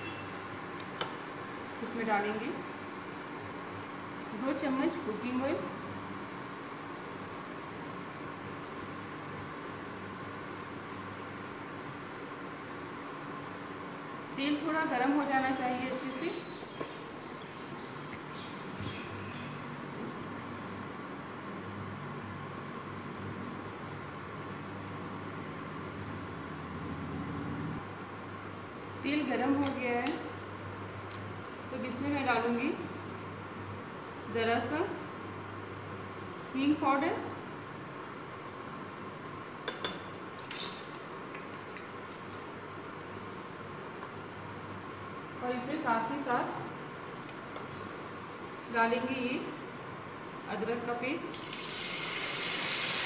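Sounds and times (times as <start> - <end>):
low background noise: 0.0 - 52.6
cooktop fan hum: 0.0 - 53.0
faint high whine: 1.4 - 27.9.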